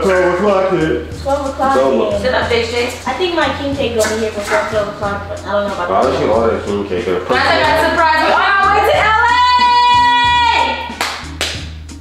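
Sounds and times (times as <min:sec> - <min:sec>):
hand claps: 0:04.0 - 0:05.0, 0:10.9 - 0:12.0.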